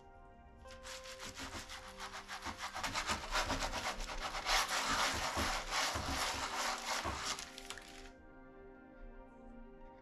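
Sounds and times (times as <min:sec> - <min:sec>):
baren rubbing over paper: 0:00.7 - 0:08.0.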